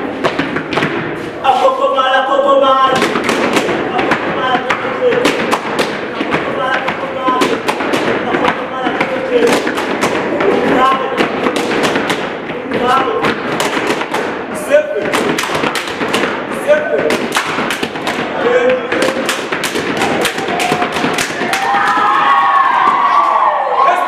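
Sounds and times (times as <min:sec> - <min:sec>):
gumboot stamping and slapping: 0:02.9 - 0:22.2.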